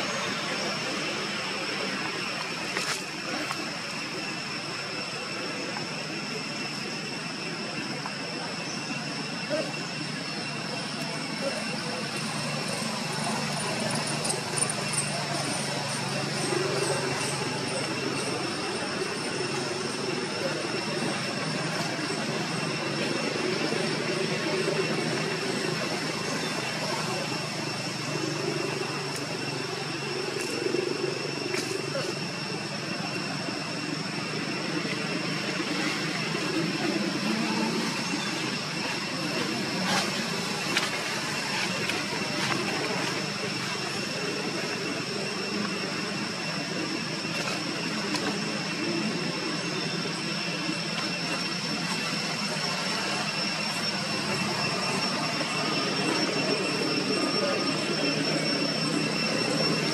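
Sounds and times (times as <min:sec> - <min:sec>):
high-pitched drone: 0:00.0 - 0:59.9
low shifting murmur: 0:00.0 - 0:59.9.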